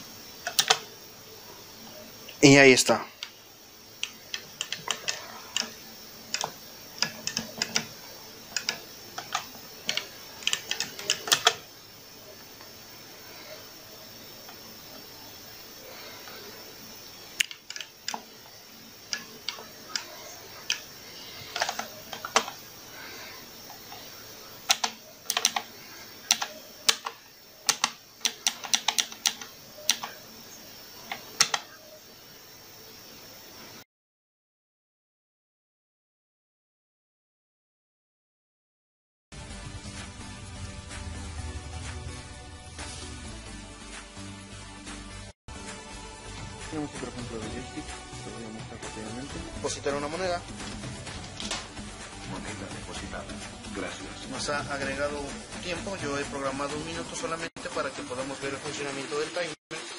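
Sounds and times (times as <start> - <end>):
arcade button clicks: 26.3 - 30.2.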